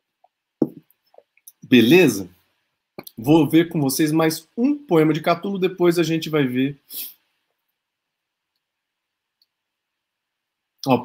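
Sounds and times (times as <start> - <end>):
man speaking: 1.5 - 2.4, 3.0 - 7.1.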